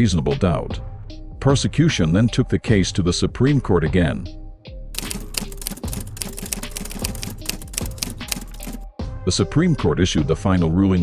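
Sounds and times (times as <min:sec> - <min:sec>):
typewriter keystroke clacks: 0:05.0 - 0:08.9.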